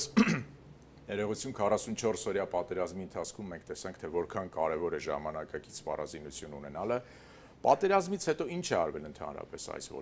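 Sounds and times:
man talking: 0:01.1 - 0:10.0.

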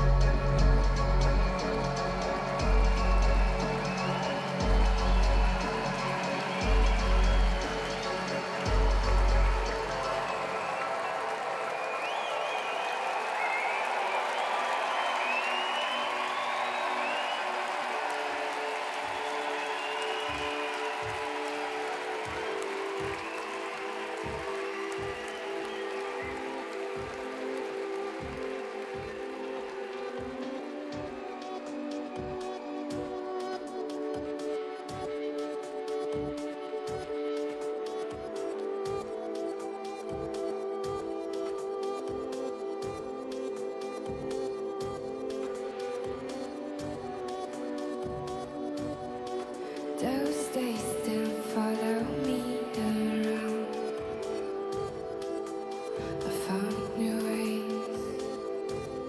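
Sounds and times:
crowd cheering and whistling: 0:00.0 - 0:59.0.

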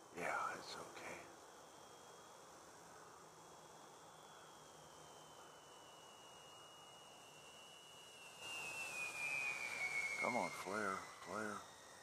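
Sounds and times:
model plane motors whining: 0:01.0 - 0:12.0.

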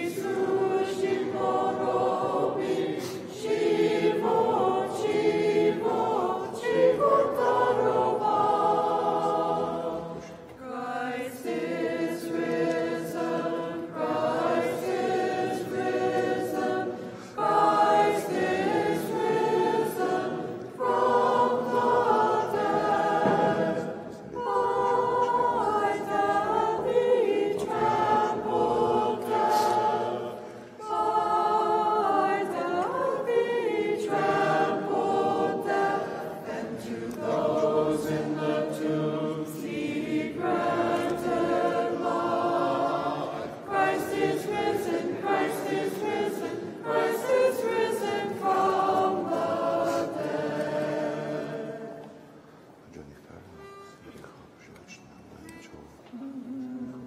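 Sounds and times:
group singing unaccompanied chant: 0:00.0 - 0:52.6.

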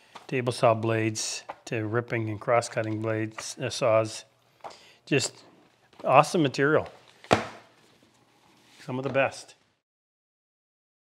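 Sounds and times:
book knocking on wooden bench: 0:07.3 - 0:07.7.

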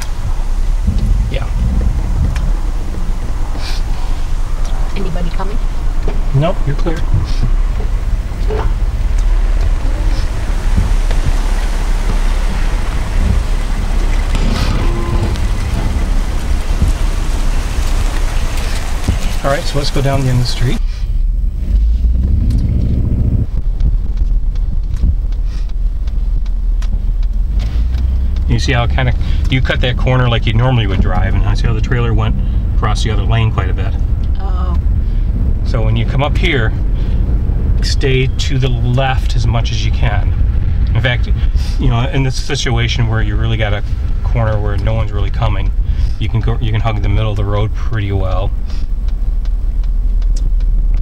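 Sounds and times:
wind on microphone: 0:00.0 - 0:19.4
pickup truck engine rumble: 0:00.0 - 0:51.0
wind noise: 0:00.0 - 0:51.0.

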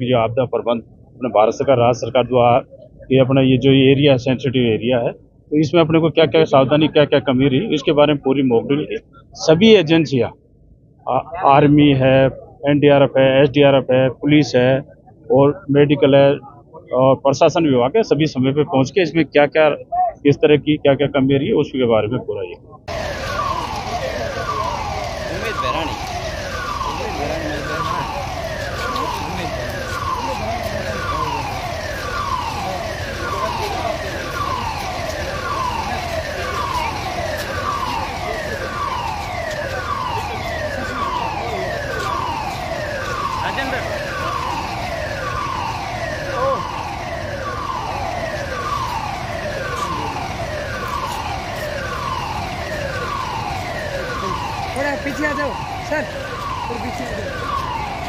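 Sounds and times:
siren falling tone: 0:00.0 - 0:10.4, 0:22.8 - 0:58.0.

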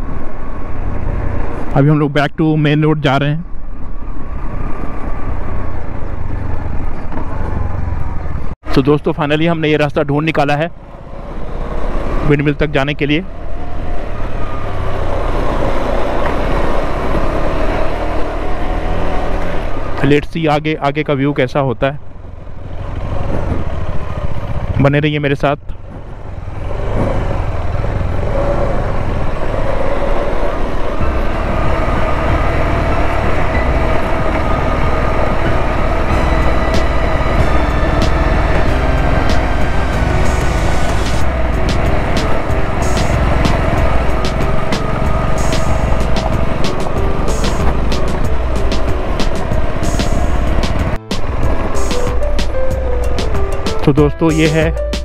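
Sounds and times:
motorcycle engine running: 0:22.0 - 0:53.8
background music: 0:29.6 - 0:55.0.

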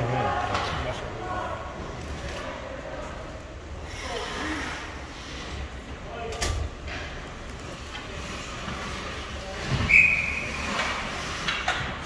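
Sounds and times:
ice rink arena hum: 0:00.0 - 0:12.0
skaters moving: 0:00.0 - 0:12.0.

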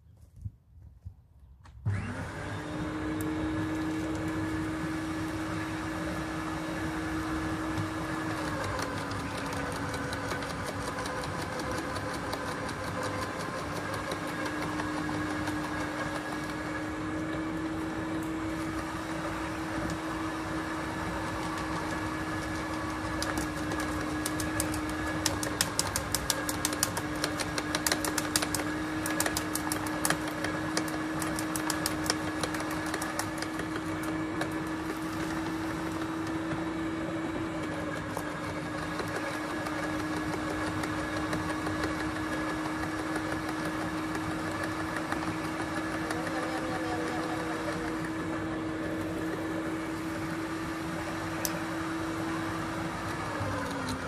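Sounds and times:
garden shredder running: 0:01.8 - 0:54.0
branches cracking in shredder: 0:21.8 - 0:36.3.

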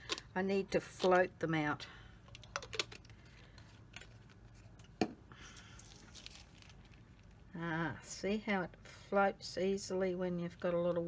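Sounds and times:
plastic sheet crinkling: 0:05.6 - 0:07.4.

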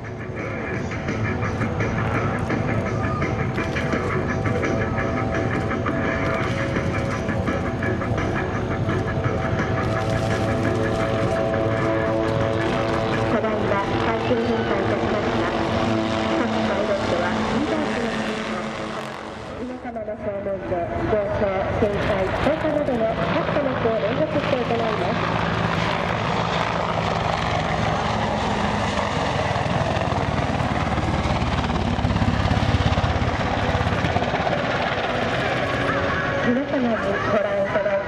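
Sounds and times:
helicopters flying past: 0:00.0 - 0:38.0.

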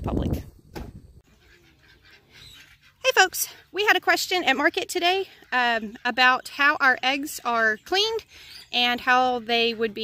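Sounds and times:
faint animal calls: 0:01.2 - 0:03.6.

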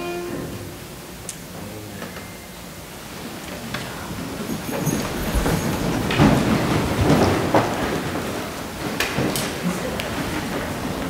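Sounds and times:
people sitting down in wooden pews: 0:00.0 - 0:11.0.

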